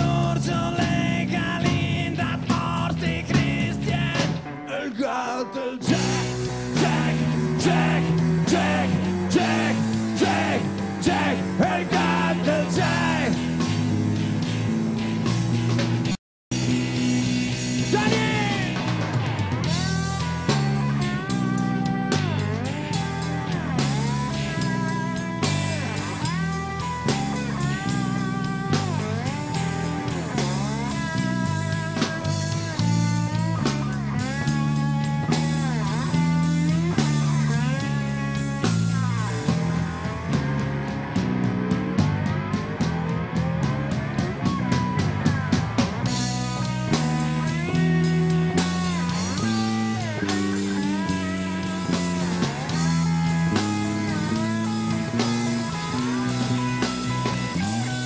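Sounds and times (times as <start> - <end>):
bass: 0.0 - 58.0
drums: 0.0 - 58.0
slide guitar soloing: 16.7 - 58.0.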